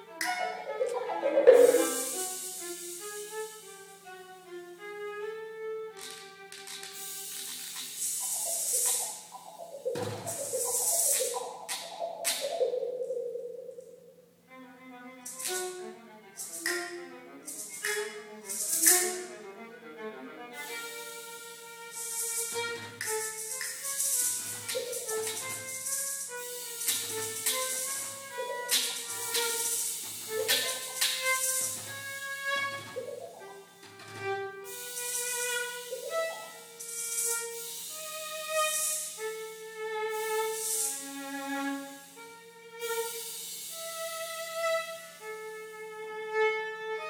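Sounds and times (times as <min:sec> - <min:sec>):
bright hissy percussion strokes: 0:00.0 - 0:04.9, 0:06.7 - 0:14.1, 0:15.2 - 0:19.5, 0:20.6 - 0:45.4
bowed viola notes: 0:00.0 - 0:07.0, 0:14.4 - 0:47.0
pitched percussion: 0:00.2 - 0:02.6, 0:16.4 - 0:16.9, 0:17.5 - 0:19.2, 0:22.1 - 0:31.9.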